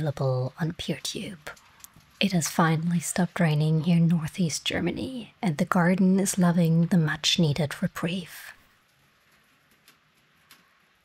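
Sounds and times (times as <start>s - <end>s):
small ticks: 8.9s - 10.8s.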